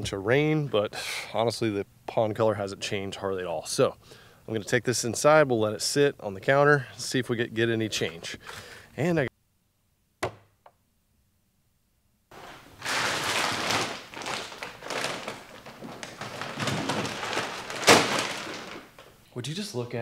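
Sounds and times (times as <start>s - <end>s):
rustling and clattering handling: 12.3s - 19.2s.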